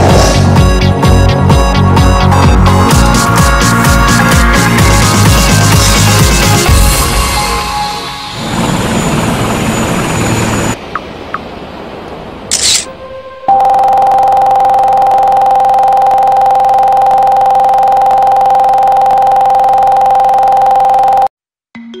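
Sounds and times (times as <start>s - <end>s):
electronic advert music: 0.0s - 8.4s.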